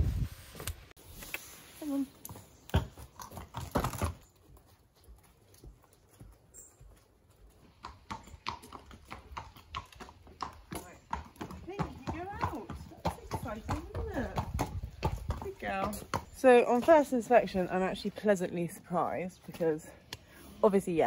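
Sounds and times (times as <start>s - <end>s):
hooves knocking on concrete: 2.2s - 18.1s.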